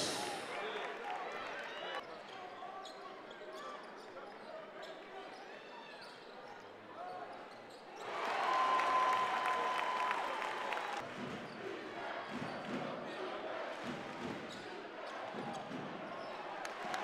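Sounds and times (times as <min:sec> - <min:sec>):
arena crowd noise: 0:00.0 - 0:17.0.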